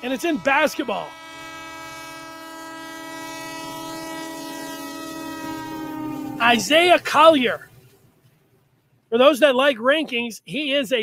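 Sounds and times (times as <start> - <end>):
train horn blast: 0.0 - 7.0.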